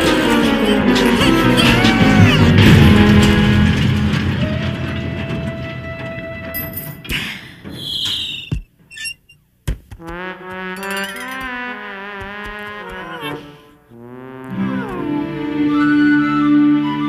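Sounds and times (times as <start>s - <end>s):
cartoon music: 0.0s - 3.4s, 10.1s - 16.2s
brass-like music: 0.0s - 5.3s, 10.0s - 17.0s
short high squeal: 7.8s - 9.4s.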